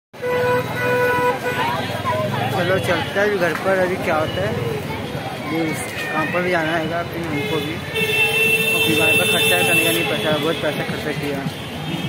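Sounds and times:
busy street noise: 0.1 - 12.0
vehicle horn honking: 0.2 - 3.2, 7.3 - 10.9.

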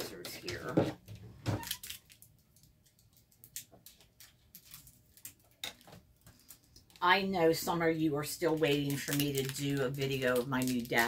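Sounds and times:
plastic packaging rustling: 0.0 - 11.0.

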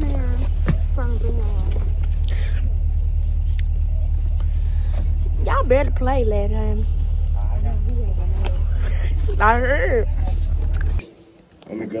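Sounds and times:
bus engine rumble: 0.0 - 11.0
road noise: 0.0 - 11.1.

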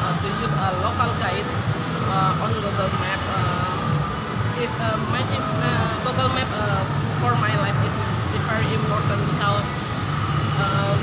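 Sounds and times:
people talking: 0.0 - 3.8, 4.6 - 9.8, 10.6 - 11.0
low background hum: 0.0 - 11.0.

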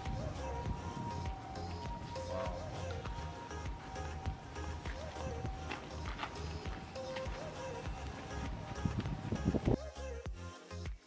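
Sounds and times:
background music with beat: 0.0 - 11.0.

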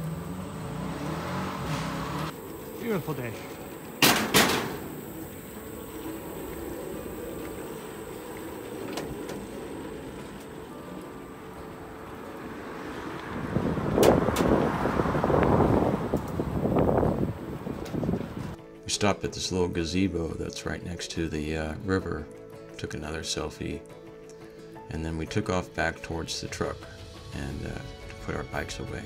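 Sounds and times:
bicycle rolling on bridge: 1.7 - 18.6
sharp knocks: 4.0 - 4.9.

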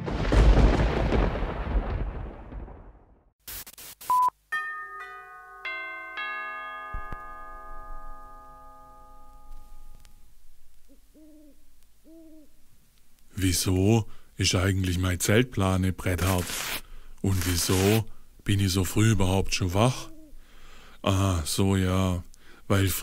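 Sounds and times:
deep boom: 0.0 - 3.3
short beep: 4.1 - 4.4
ringing chime notes: 4.5 - 10.4
owl-like hoots: 10.8 - 12.6, 19.9 - 20.4.

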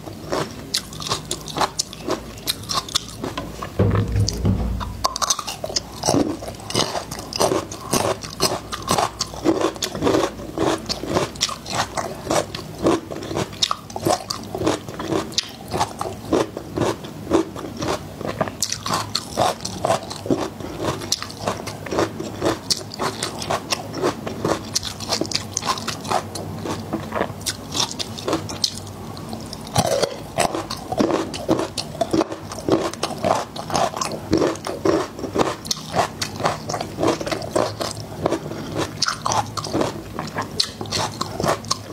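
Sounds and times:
chewing garlic cloves: 0.0 - 3.7, 6.7 - 41.9.

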